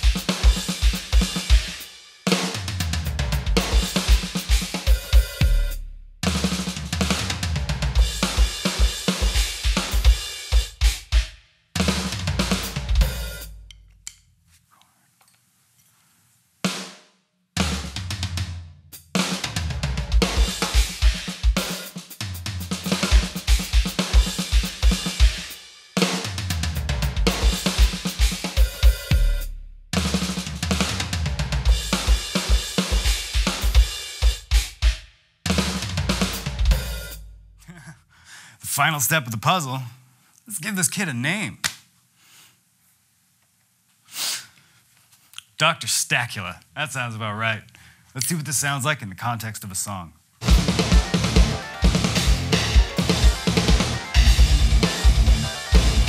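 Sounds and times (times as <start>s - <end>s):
cymbals: 0.0s - 13.6s, 35.8s - 37.2s, 50.4s - 56.0s
electronic drum kit playing: 0.0s - 13.6s, 19.0s - 37.2s, 50.4s - 56.0s
rapid bass drum strokes: 0.0s - 13.6s, 17.6s - 37.8s, 50.4s - 56.0s.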